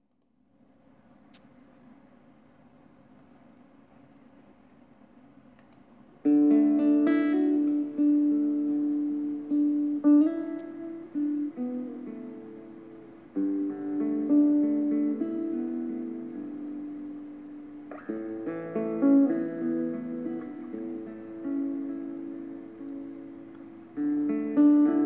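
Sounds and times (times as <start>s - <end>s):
acoustic guitar strumming: 6.2s - 25.0s.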